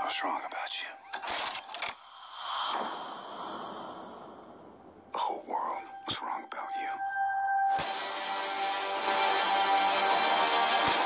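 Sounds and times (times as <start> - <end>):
breathy whispery sweeping sound: 2.0 - 7.0.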